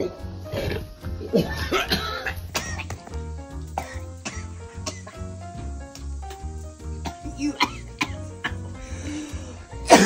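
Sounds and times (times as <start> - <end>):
background music: 0.0 - 10.0
woman coughing: 1.4 - 2.9, 7.1 - 8.6.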